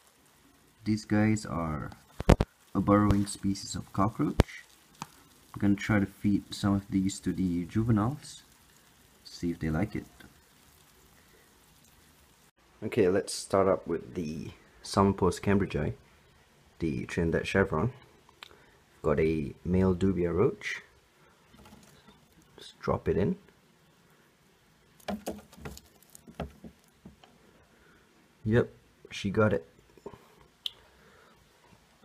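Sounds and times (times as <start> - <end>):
faint steady hiss: 0.0 - 32.0
insect tapping and scrabbling: 1.8 - 12.0, 21.4 - 22.6, 25.0 - 27.4.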